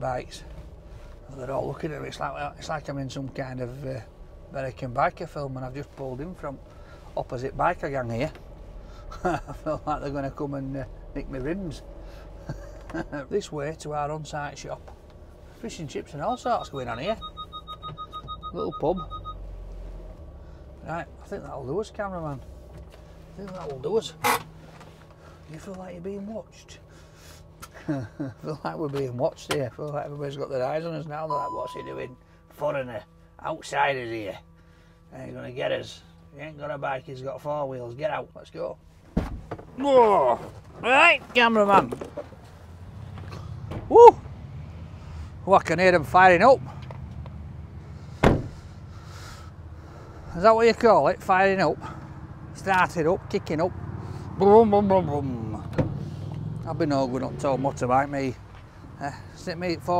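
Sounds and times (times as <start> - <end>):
van engine idling: 0.0 - 59.9
parking sensor beeping rapidly: 16.3 - 19.4, 31.2 - 32.2.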